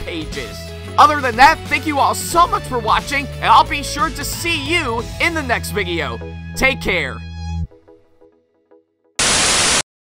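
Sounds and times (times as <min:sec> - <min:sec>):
tv static hiss: 0:09.2 - 0:09.9.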